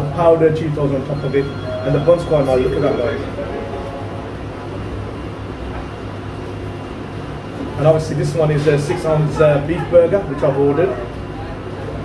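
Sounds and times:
low hum: 1.1 - 7.3.

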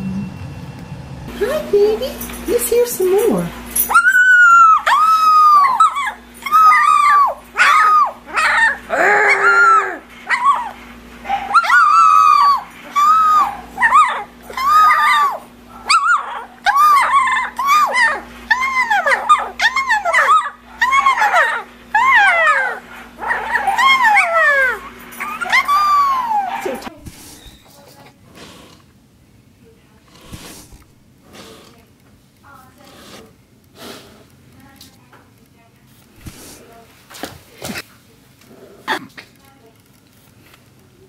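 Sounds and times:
puppy yipping: 3.8 - 27.7.

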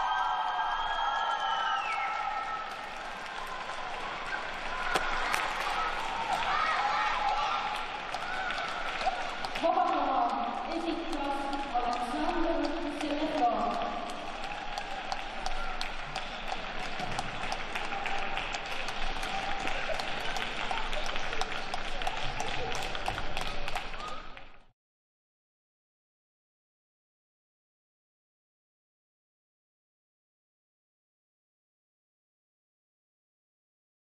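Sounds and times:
audience applause: 0.0 - 24.7.

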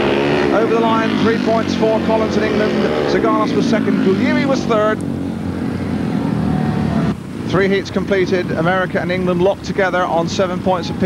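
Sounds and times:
motorcycle engines droning: 0.0 - 11.0.

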